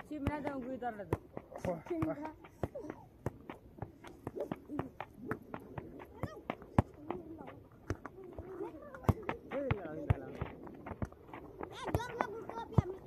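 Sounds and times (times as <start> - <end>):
football thuds: 0.0 - 13.0.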